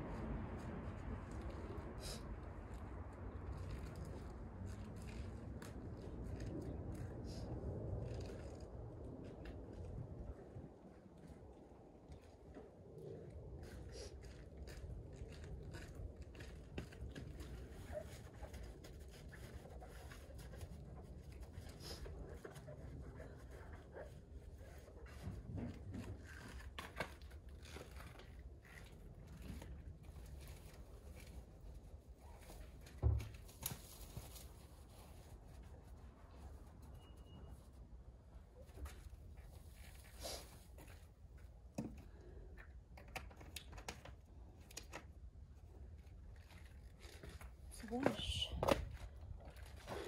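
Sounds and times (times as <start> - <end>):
rubbing and scratching on tyre: 0.0 - 11.3, 12.2 - 41.5
wind rumble on microphone: 0.0 - 18.2.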